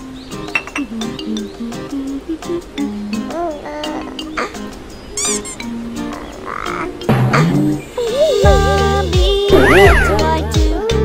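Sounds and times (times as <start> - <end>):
soft background music: 0.0 - 11.0
cartoon wobbling warble: 5.2 - 5.6
cartoon high chirp: 5.2 - 7.6, 9.5 - 10.2.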